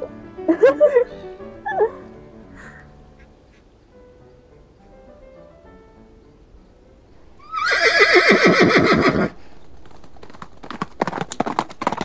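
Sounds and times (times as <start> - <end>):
soft background music: 0.0 - 7.2
woman laughing: 0.5 - 2.0.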